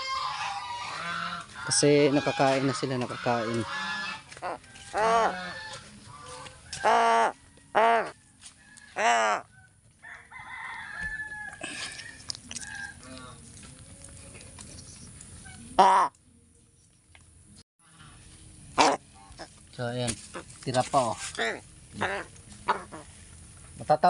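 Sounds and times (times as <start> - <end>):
crows cawing: 0.0 - 8.2, 9.0 - 9.5, 18.8 - 19.6, 21.2 - 23.2.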